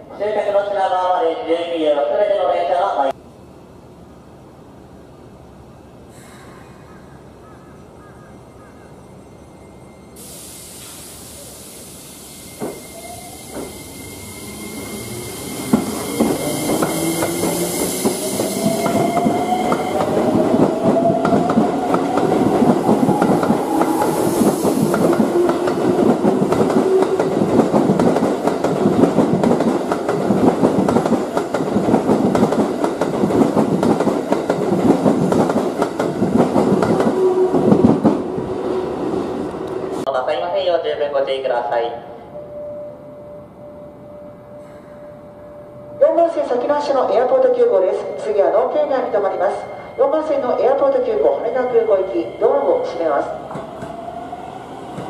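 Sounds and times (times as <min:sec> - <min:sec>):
electric train inverter whining: 0:09.1 - 0:40.1.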